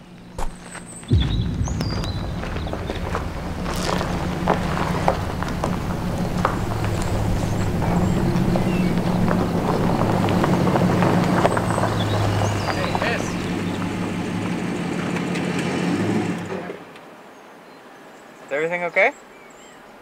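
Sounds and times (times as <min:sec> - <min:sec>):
tyres crunching on gravel: 0:00.1 - 0:16.2
truck engine running: 0:01.1 - 0:16.7.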